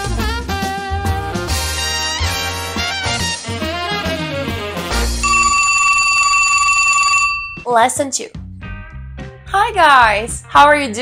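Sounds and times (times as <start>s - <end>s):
telephone bell ringing: 5.2s - 7.7s.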